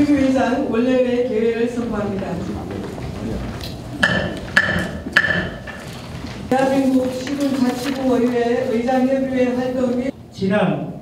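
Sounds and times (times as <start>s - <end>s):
wooden gavel knocking on block: 4.0s - 5.7s.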